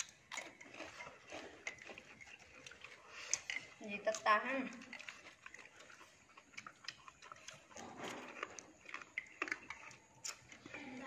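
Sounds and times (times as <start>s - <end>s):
slurping and chewing noodles: 0.0s - 11.0s.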